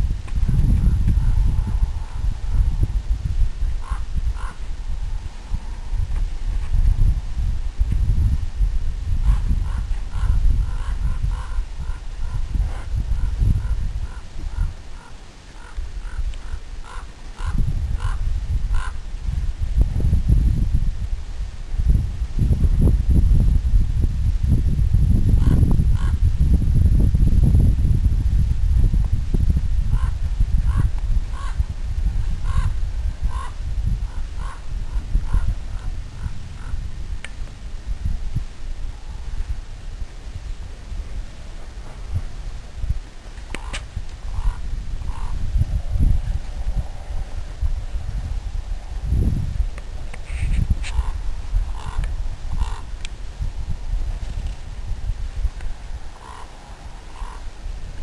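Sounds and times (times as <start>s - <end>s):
steady low rumble: 0.0s - 58.0s
bird harsh calls: 3.8s - 4.7s, 9.2s - 19.0s, 33.3s - 33.5s, 52.6s - 52.8s, 56.2s - 57.4s.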